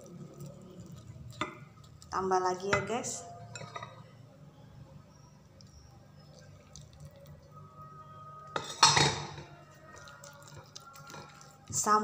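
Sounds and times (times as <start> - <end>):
spoon clinking on bowl: 3.5 - 4.1
water pouring into a bowl: 6.2 - 7.4.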